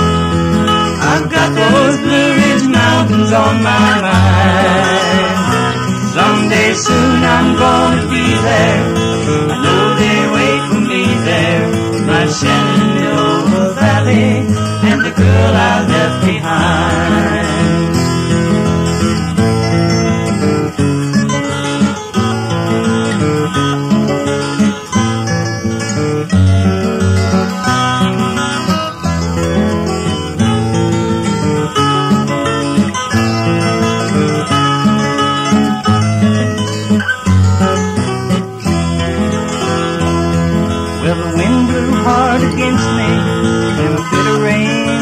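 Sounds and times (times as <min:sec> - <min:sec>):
acoustic guitar country-folk music: 0:00.0 - 0:45.0.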